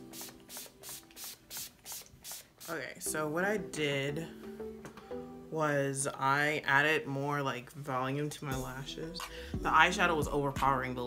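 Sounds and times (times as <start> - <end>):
spray bottle hissing puffs: 0.0 - 2.9.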